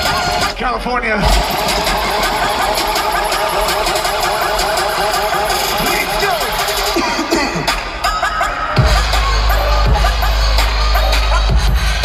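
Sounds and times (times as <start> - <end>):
dubstep music with wobbling synth: 0.0 - 12.0
steady low bass: 8.8 - 12.0.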